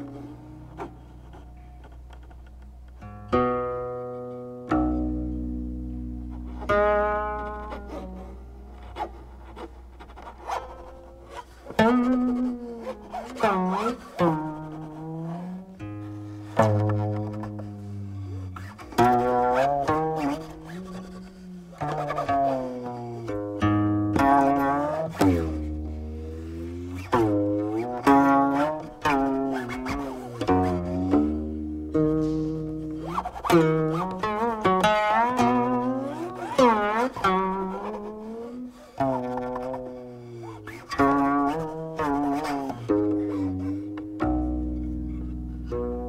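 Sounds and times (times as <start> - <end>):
plucked zither notes: 0.0 - 46.0.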